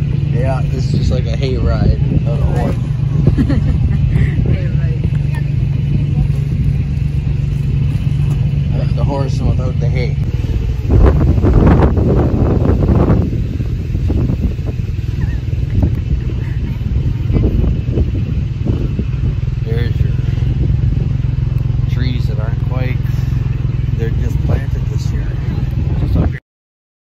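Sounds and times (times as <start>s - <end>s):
faint voices talking: 0.0s - 11.1s, 15.1s - 26.4s
wagon ride rumble: 0.0s - 26.4s
wind buffeting microphone: 0.0s - 26.4s.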